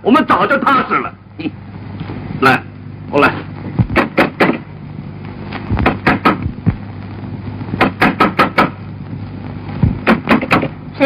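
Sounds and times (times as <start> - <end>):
knocking on a door: 3.8 - 4.6, 5.8 - 6.8, 7.8 - 8.8.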